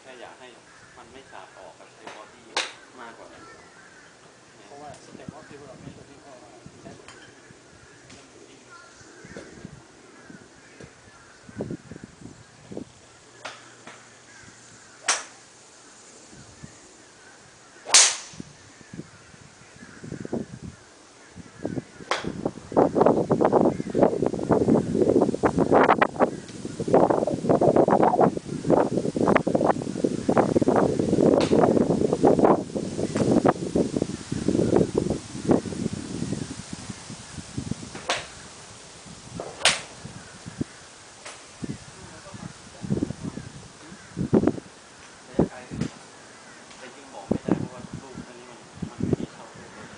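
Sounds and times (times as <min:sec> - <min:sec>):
crackling rustle: 0:00.0 - 0:49.9
golf clubs striking balls: 0:02.0 - 0:02.9, 0:13.4 - 0:14.1, 0:15.0 - 0:15.5, 0:17.8 - 0:18.5, 0:22.0 - 0:22.4, 0:31.3 - 0:31.7, 0:37.9 - 0:38.4, 0:39.4 - 0:40.0.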